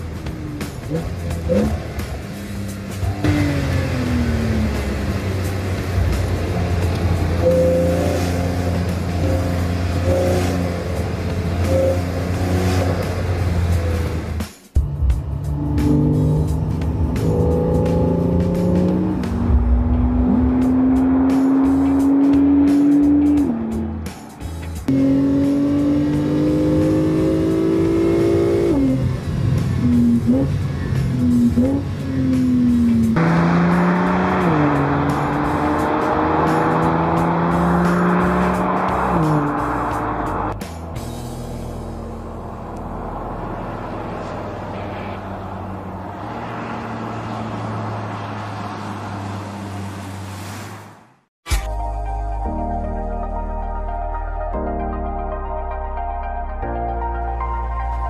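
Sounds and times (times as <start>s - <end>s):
car engine accelerating through gears: 0.0s - 50.7s.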